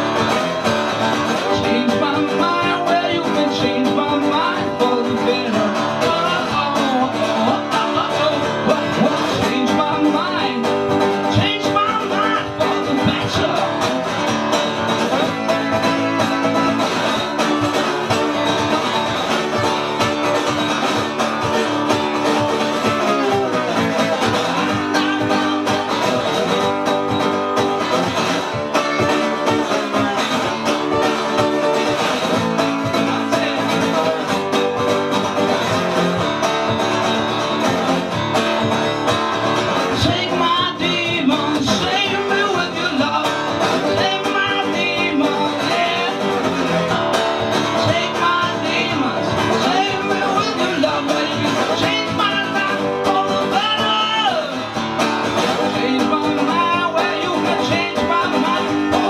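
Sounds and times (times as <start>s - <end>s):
acoustic guitar strumming: 0.0s - 59.0s
man singing: 0.0s - 59.0s.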